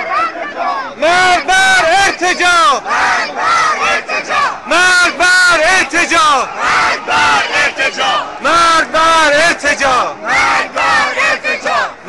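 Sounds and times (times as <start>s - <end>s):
crowd chanting in unison: 0.0s - 12.0s.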